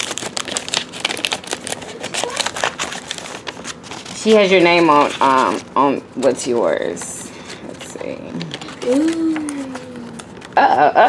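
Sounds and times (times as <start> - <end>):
paper envelope rustling: 0.0 - 10.6
cellophane crackling: 0.0 - 10.8.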